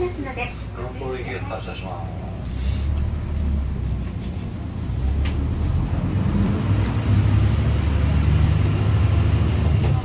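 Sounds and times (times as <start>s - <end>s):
bus diesel engine drone: 0.0s - 10.0s.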